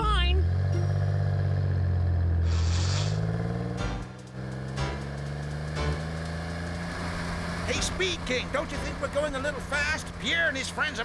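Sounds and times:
cartoon car engine revving: 0.0 - 11.0
burst of hiss: 2.4 - 3.2.

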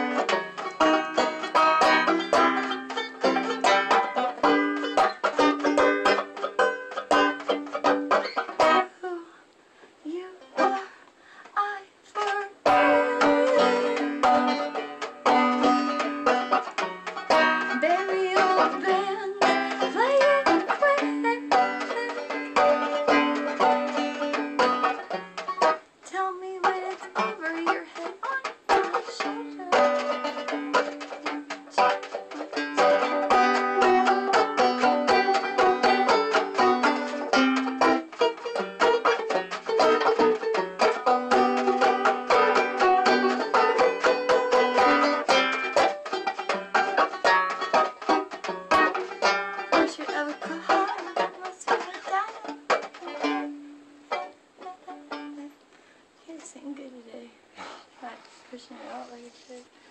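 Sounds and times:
banjo playing solo: 0.0 - 9.2, 10.1 - 56.0.

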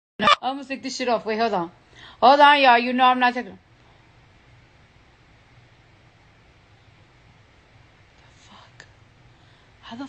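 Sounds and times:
steady low hum: 0.2 - 10.0
faint whispered breath: 8.2 - 9.9.

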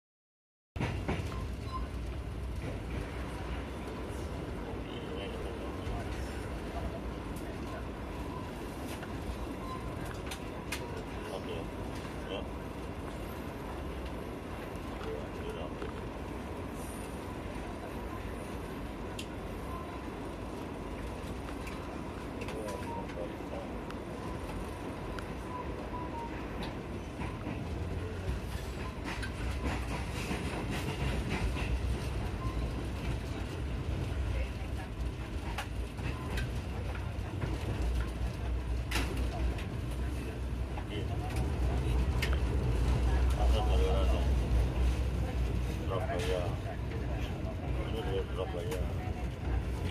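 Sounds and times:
train wheels rumbling: 0.8 - 15.1, 24.0 - 49.9.

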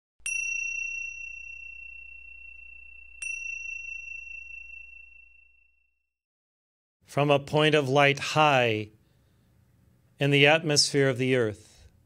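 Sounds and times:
high bell-like chime: 0.2 - 6.0.

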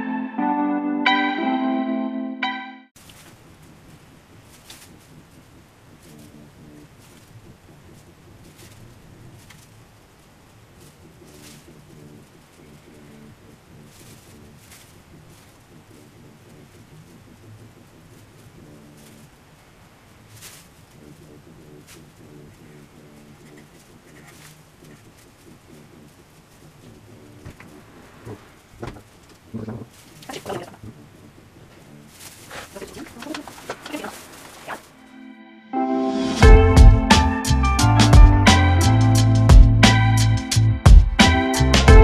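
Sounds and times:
soft rustle: 3.0 - 35.1
faint pigeon cooing: 3.4 - 9.9, 10.8 - 19.4, 20.2 - 28.5, 29.5 - 34.9
paintbrush rustles and scrapes: 20.2 - 20.9, 32.0 - 35.0.

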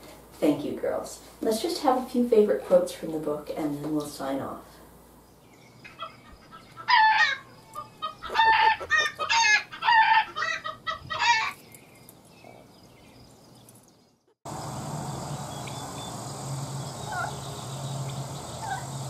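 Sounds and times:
chickens calling: 5.7 - 11.8, 15.2 - 19.0.

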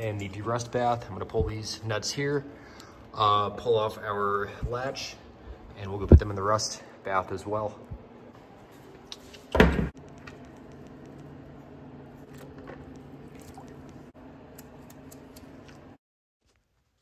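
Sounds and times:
quiet steady hum: 0.0 - 9.4, 10.0 - 16.0
small ticks and splashes: 13.3 - 13.8.

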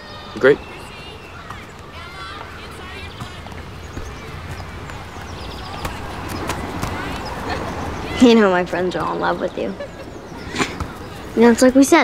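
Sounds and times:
distant voices: 0.0 - 12.0.

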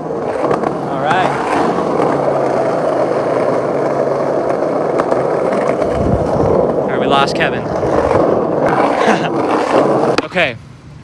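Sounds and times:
skateboard wheels rumbling on asphalt: 0.0 - 11.0.

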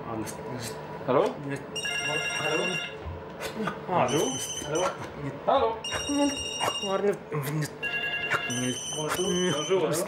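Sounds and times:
high-pitched phone tone: 1.8 - 3.0, 5.8 - 7.0, 7.8 - 10.0.

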